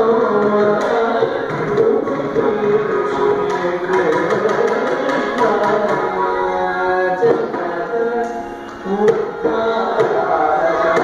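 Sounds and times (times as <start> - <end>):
violin melody: 0.0 - 11.0.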